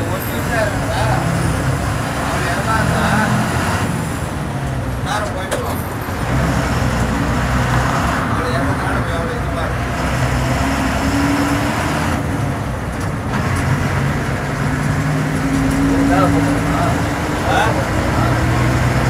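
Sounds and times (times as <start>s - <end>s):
bus diesel engine running: 0.0s - 19.0s
road noise: 0.0s - 19.0s.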